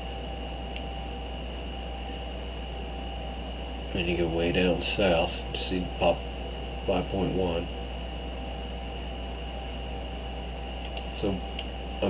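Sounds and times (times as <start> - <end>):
electrical hum and hiss: 0.0 - 12.0
high-pitched whine: 0.0 - 12.0.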